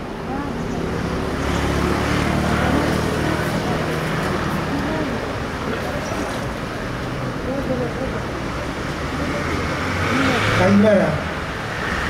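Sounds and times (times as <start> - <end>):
faint voices: 0.0 - 12.0
vehicle engine passing by: 0.9 - 5.2, 9.0 - 12.0.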